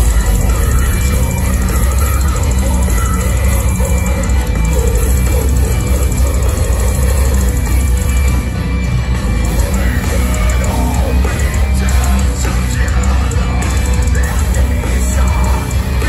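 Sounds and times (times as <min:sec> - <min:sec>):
distorted guitars: 0:00.0 - 0:16.0
drums: 0:00.0 - 0:16.0.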